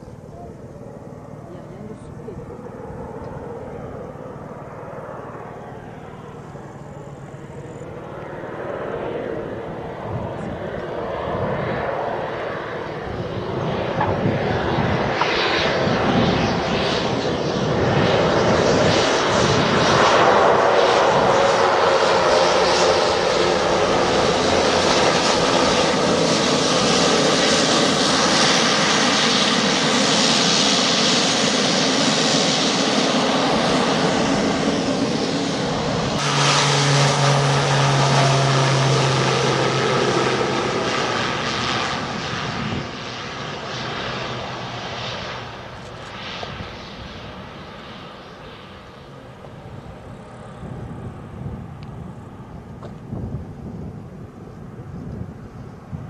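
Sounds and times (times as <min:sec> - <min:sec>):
plane taking off: 0:00.0 - 0:56.0
turboprop plane taxiing: 0:00.0 - 0:56.0.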